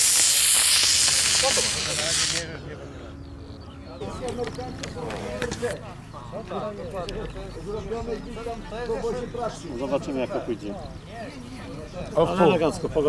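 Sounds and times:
rocket motor rushing hiss: 0.0s - 2.7s.

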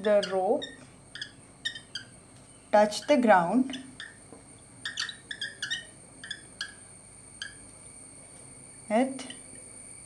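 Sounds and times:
chalk squeaking on blackboard: 4.8s - 6.8s.

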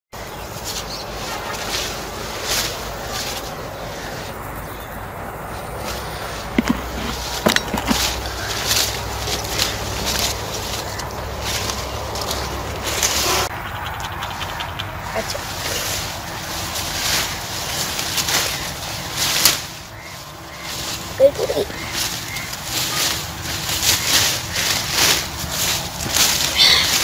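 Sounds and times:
leaves rustling: 0.2s - 27.0s
footsteps: 0.5s - 4.3s, 5.5s - 27.0s.

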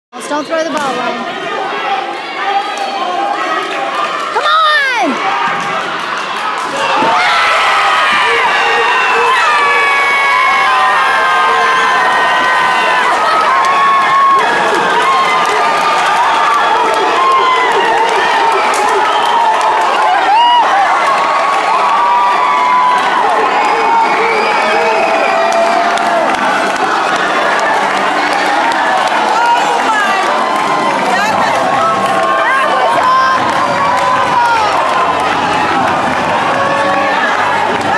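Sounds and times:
crowd cheering and yelling: 0.2s - 37.9s.

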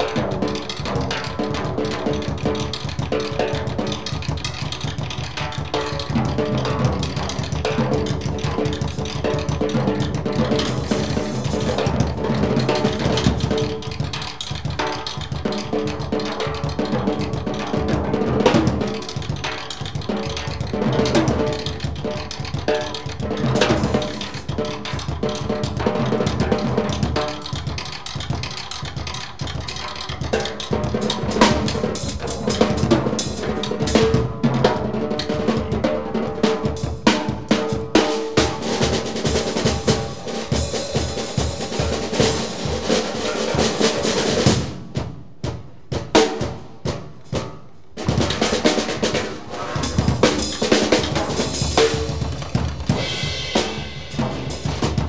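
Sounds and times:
jazz drum solo: 0.0s - 55.0s
cymbal strokes: 38.0s - 44.6s.

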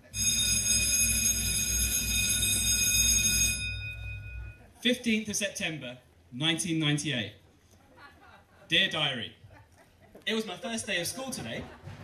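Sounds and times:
bell-like chord: 3.5s - 4.6s.

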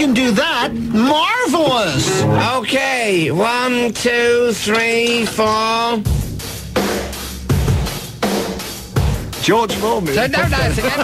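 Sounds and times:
steady low note: 0.3s - 2.7s
heavy rock drum beat: 6.0s - 11.0s.

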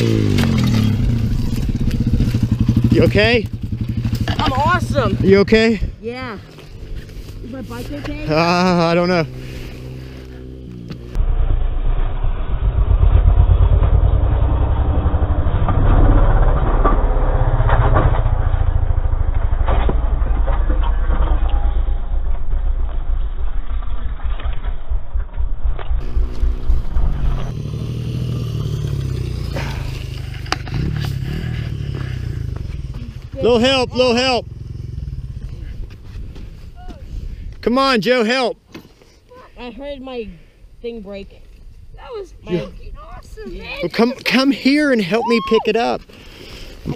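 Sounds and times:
motorcycle engine revving: 0.0s - 22.6s, 26.0s - 36.7s.

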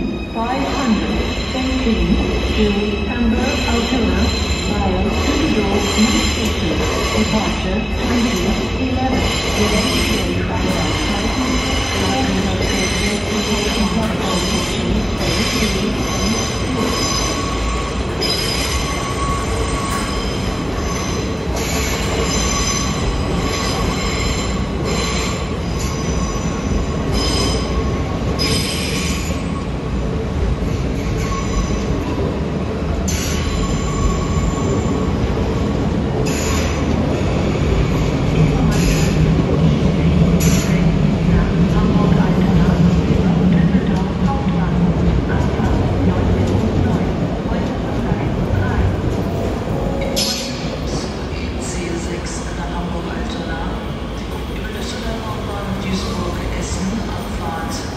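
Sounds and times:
train rumbling: 0.0s - 57.9s.

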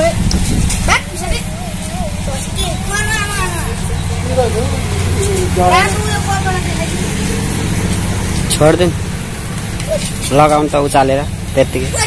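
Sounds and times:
engine idling: 0.0s - 12.0s
people's voices: 0.0s - 12.0s.

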